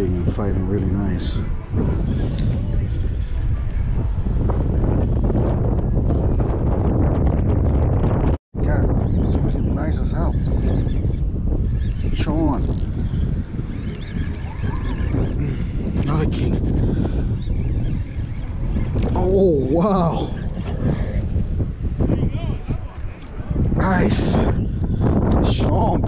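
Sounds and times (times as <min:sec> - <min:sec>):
wind rushing over microphone: 0:00.0 - 0:26.0.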